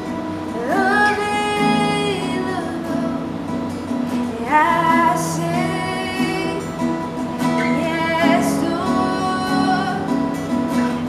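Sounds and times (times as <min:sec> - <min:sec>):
strummed acoustic guitar: 0:00.0 - 0:11.0
woman singing: 0:00.4 - 0:11.0.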